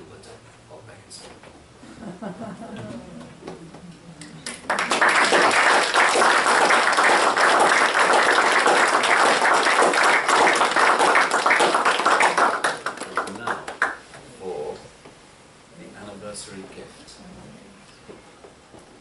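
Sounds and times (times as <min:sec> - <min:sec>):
audience laughter: 0:01.8 - 0:03.8
crowd applause: 0:04.4 - 0:13.9.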